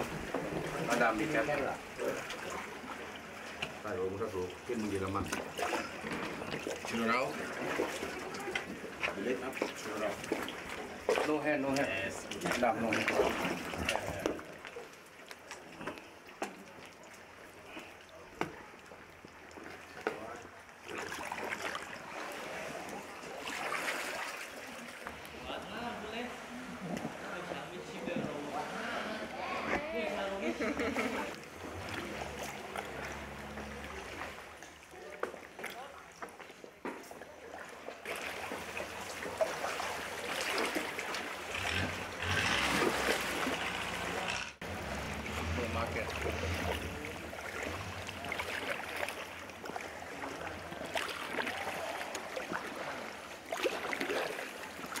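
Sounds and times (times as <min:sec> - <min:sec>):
faint water sounds: 0:00.0 - 0:55.0
people chattering: 0:24.2 - 0:31.6.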